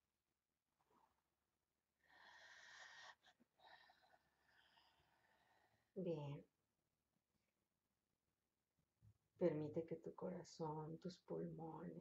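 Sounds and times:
person breathing faintly: 2.0 - 5.9.

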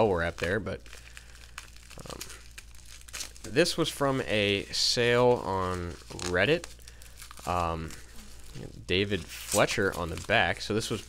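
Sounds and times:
bubble wrap crinkling: 0.0 - 11.0.

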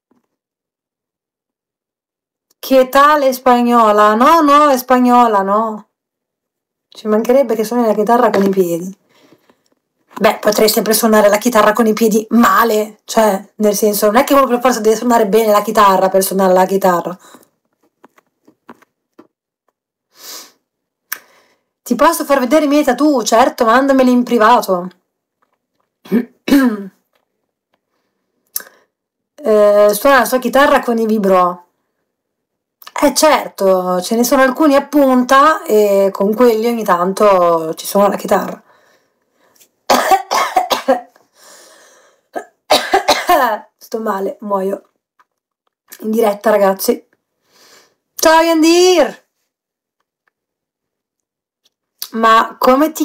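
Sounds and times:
faint breath: 9.0 - 9.8, 21.2 - 21.8, 38.6 - 39.6, 41.3 - 42.3, 47.4 - 48.1
woman sniffing: 20.1 - 20.6, 41.3 - 42.3
woman coughing: 26.1 - 27.0, 39.9 - 41.1, 42.3 - 43.6.

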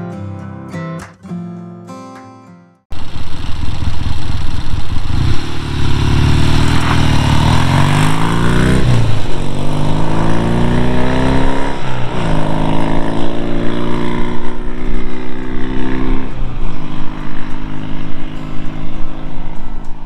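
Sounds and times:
motorcycle engine accelerating: 2.9 - 20.0.

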